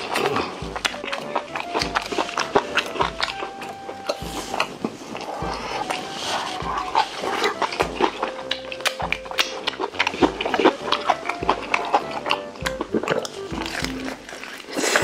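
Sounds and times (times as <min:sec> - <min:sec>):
background music with low beat: 0:00.0 - 0:14.4
fried chicken crunching and chewing: 0:00.0 - 0:15.0.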